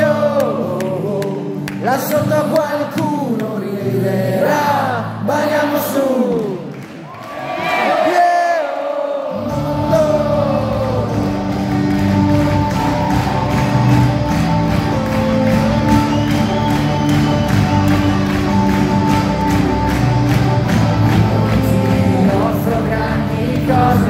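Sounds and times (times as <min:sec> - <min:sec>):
live rock band playing: 0:09.6 - 0:24.0.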